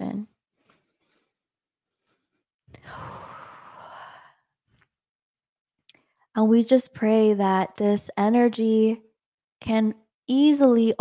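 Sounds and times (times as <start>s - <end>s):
woman sighing: 2.8s - 4.3s.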